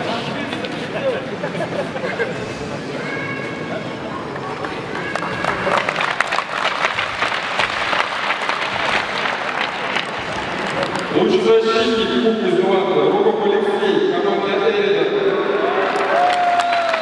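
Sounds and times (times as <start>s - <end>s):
small group applauding: 4.4s - 11.1s, 15.6s - 17.0s
man's voice: 11.1s - 15.3s.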